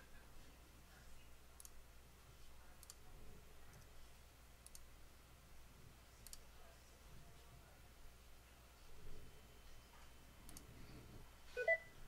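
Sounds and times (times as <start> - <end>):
computer mouse clicks: 1.6 - 1.8, 2.8 - 3.0, 4.6 - 4.9, 6.2 - 6.4, 10.4 - 10.7.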